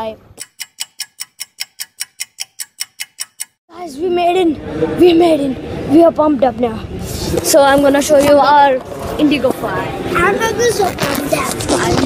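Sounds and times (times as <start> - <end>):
clock ticking: 0.4 - 3.6.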